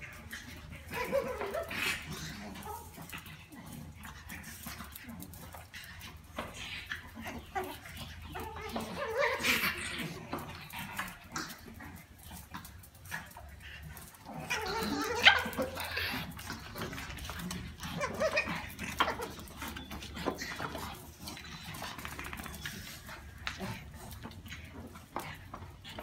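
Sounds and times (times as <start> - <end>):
dogs whining: 0.0 - 3.8, 6.3 - 12.2, 13.3 - 26.0
small dogs barking: 0.0 - 26.0.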